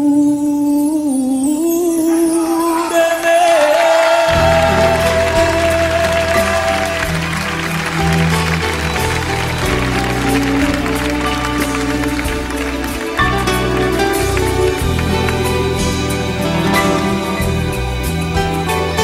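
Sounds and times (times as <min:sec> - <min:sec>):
pop ballad instrumental music: 0:00.0 - 0:19.0.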